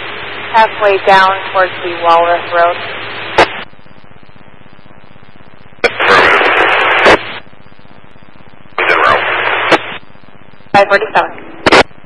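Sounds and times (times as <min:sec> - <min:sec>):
loud radio static: 0:00.0 - 0:12.0
radio hiss: 0:00.0 - 0:12.0
radio transmission click: 0:03.3 - 0:12.0.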